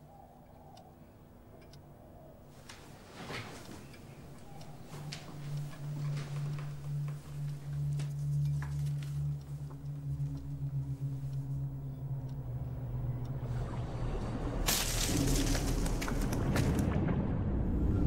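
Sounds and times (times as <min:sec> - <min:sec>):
low held drone: 0:03.4 - 0:18.0.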